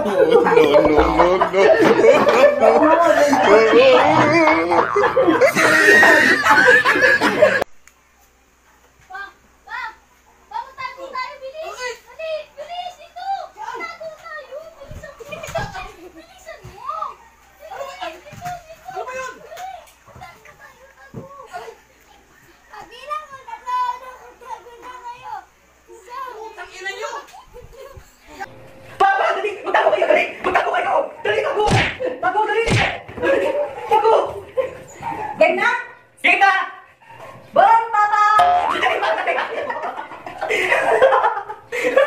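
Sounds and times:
loud excited voices: 0.0 - 7.6
children calling and squealing: 0.7 - 7.6.

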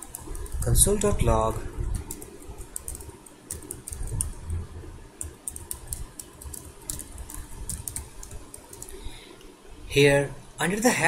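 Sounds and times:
computer keyboard typing: 0.0 - 4.6, 5.2 - 9.1.

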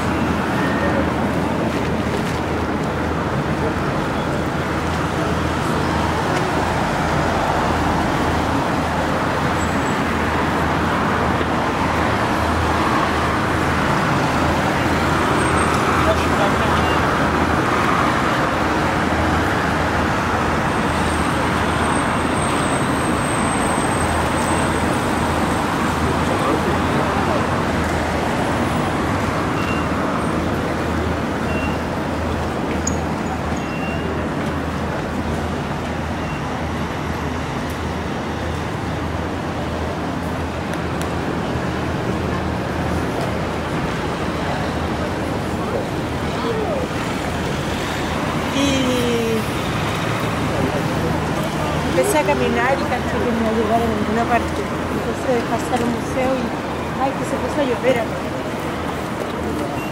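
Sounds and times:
traffic rumble: 0.0 - 59.9.

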